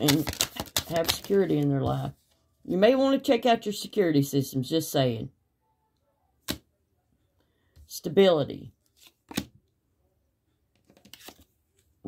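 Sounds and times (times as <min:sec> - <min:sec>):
card laid on table click: 0:09.0 - 0:09.5.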